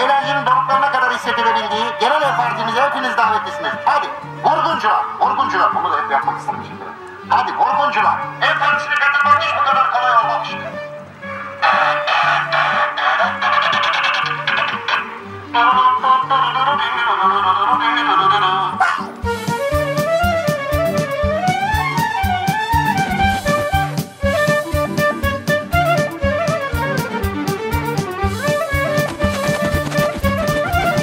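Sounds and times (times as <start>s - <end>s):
background music with drum beat: 12.5s - 15.2s, 18.9s - 31.0s.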